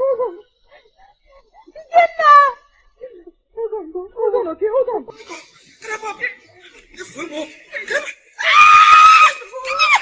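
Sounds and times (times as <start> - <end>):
woman screaming: 8.4 - 10.0.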